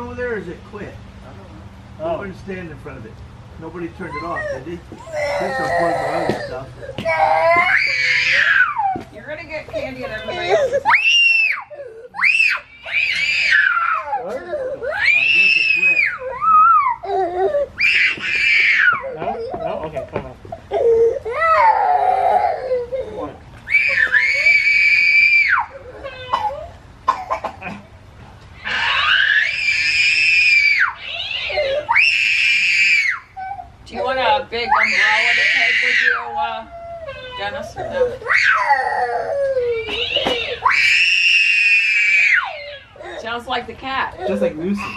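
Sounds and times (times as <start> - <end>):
young child screaming and crying: 4.0 - 9.1, 9.8 - 19.6, 20.7 - 26.8, 28.6 - 43.2.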